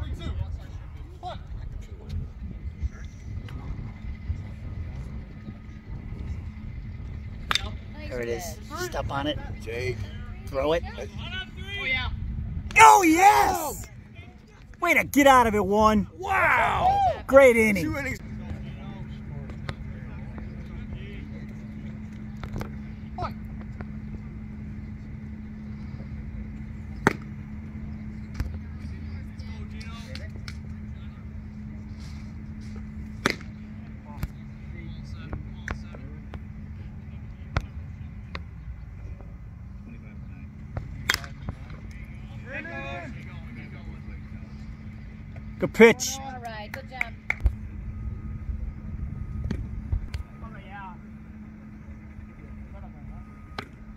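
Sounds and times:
steady low hum: 0:00.0 - 0:53.9
faint voices: 0:12.7 - 0:13.9.

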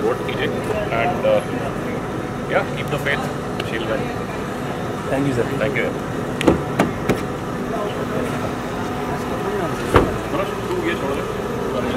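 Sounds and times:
vehicle engine idling: 0:00.0 - 0:11.9
car door clicking open: 0:06.4 - 0:07.3
car door shutting: 0:06.4 - 0:07.4, 0:09.8 - 0:10.4.

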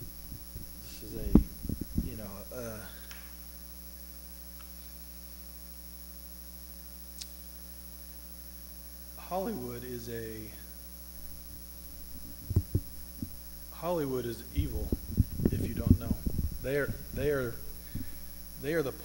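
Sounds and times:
person speaking: 0:00.0 - 0:03.1, 0:11.2 - 0:19.0
electrical mains hum: 0:00.0 - 0:19.0.

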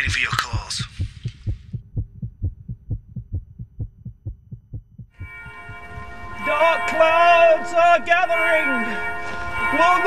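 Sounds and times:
fast heartbeat thumps: 0:00.0 - 0:05.9
sustained music chord: 0:05.2 - 0:10.0.

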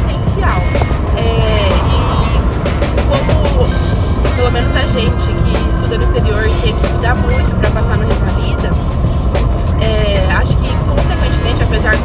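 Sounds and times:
woman talking: 0:00.0 - 0:08.8, 0:09.8 - 0:12.0
background music: 0:00.0 - 0:12.0
car engine and road rumble: 0:00.0 - 0:12.0.

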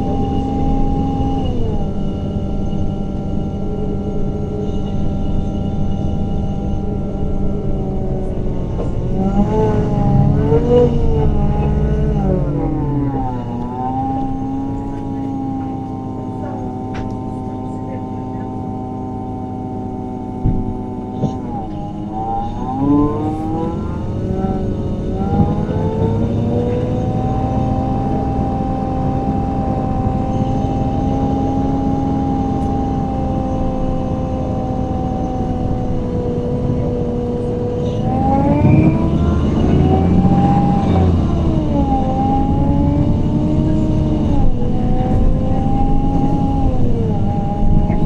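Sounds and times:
bus engine and gearbox whine: 0:00.0 - 0:48.0.

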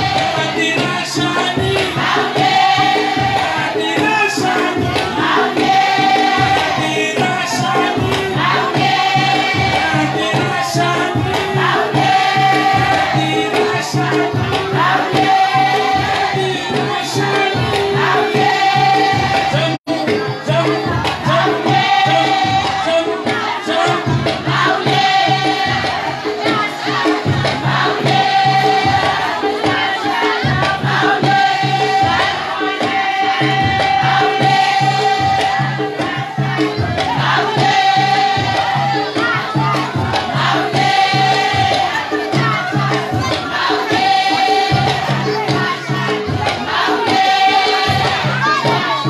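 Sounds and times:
group singing a chant: 0:00.0 - 0:49.0
percussion: 0:00.0 - 0:49.0.

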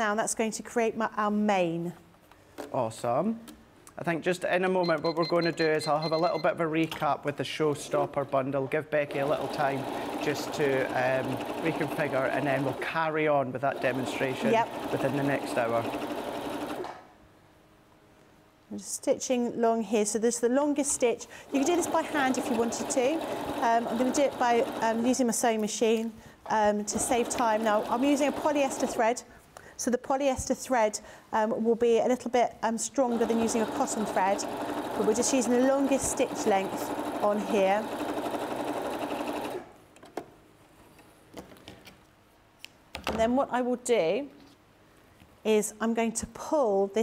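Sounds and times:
sewing machine stitching: 0:09.1 - 0:13.0, 0:13.7 - 0:17.0, 0:21.5 - 0:25.4, 0:26.8 - 0:29.0, 0:33.1 - 0:39.7.

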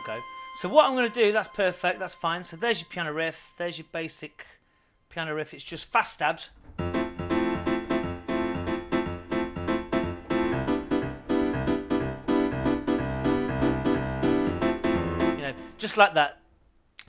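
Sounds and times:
piano chord stabs: 0:00.0 - 0:03.9, 0:06.6 - 0:16.1
low bass notes: 0:06.5 - 0:15.8.

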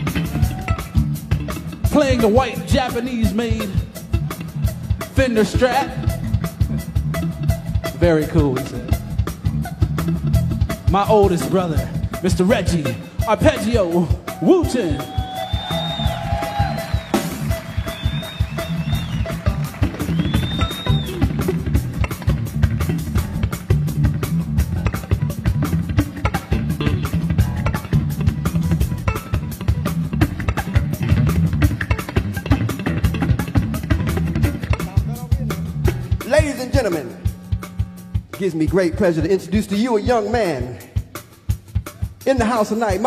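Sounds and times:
drum kit: 0:00.0 - 0:43.0
electric guitar slap-style thumping: 0:16.3 - 0:36.3.

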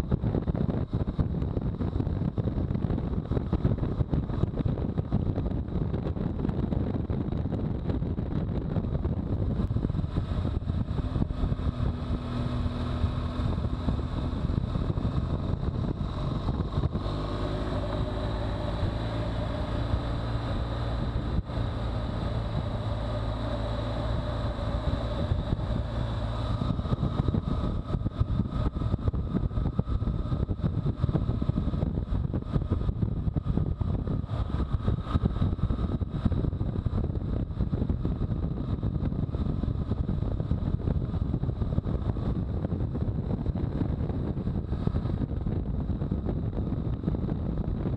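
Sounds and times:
motorcycle engine cruising: 0:00.0 - 0:47.9
road noise: 0:00.0 - 0:47.9
wind rushing over microphone: 0:00.0 - 0:47.9.

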